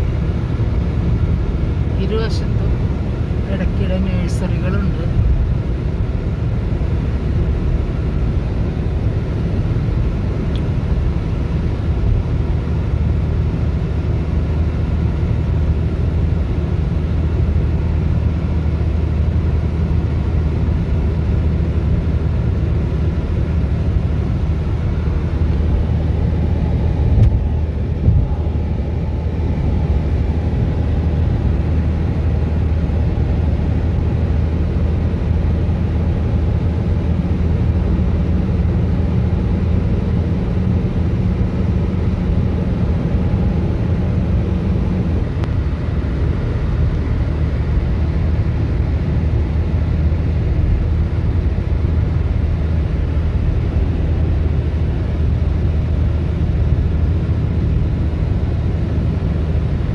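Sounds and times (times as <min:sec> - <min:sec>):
car cabin road drone: 0:00.0 - 0:59.9.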